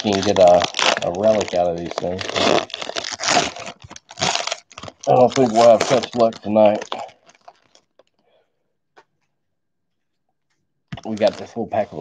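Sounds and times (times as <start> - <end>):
plastic wrapper crinkling and tearing: 0.0 - 8.2, 10.9 - 12.0.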